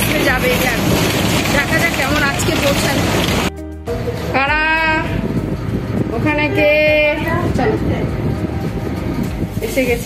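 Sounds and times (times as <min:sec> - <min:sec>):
woman talking: 0:00.0 - 0:03.2, 0:04.3 - 0:05.2, 0:06.1 - 0:08.2, 0:09.6 - 0:10.0.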